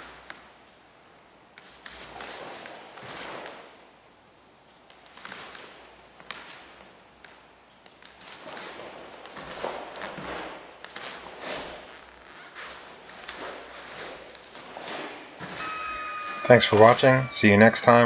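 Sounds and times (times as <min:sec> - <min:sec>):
bare feet stepping on foam mats: 0:01.6 - 0:03.8, 0:04.8 - 0:15.7
cotton uniform swishing: 0:01.7 - 0:03.9, 0:08.1 - 0:16.9.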